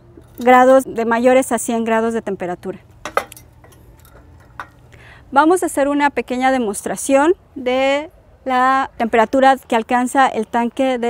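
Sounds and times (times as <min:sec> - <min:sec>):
light clinks on concrete: 0:03.0 - 0:04.9.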